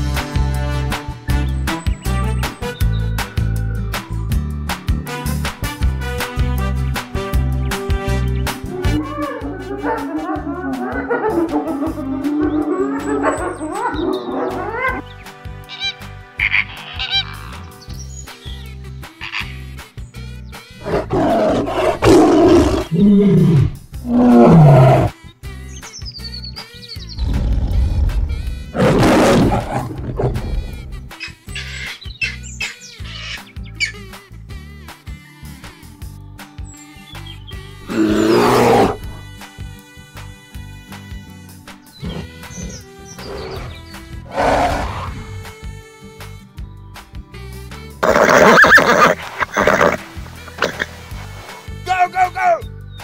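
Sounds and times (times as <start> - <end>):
background music with steady beat: 0.0 - 53.0
cartoon bear roar: 8.6 - 15.0, 20.8 - 25.2, 28.8 - 30.8, 37.9 - 39.2
snarling cries: 8.6 - 15.1, 15.7 - 17.7, 20.8 - 25.2, 28.7 - 32.4, 37.8 - 39.2, 42.0 - 45.5, 48.0 - 50.9
big-cat roar: 20.8 - 25.2, 27.2 - 30.8, 37.9 - 39.2, 42.0 - 45.5.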